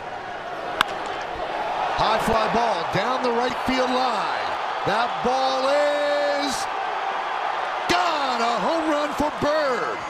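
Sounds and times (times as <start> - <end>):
ballpark crowd: 0.0 - 10.0
baseball bat crack: 0.6 - 1.5.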